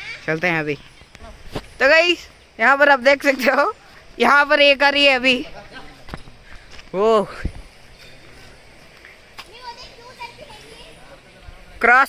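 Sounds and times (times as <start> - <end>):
distant children calling: 0.0 - 12.0.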